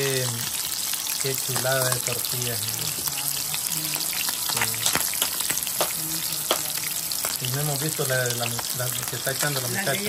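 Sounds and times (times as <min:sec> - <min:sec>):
food sizzling with pops: 0:00.0 - 0:10.0.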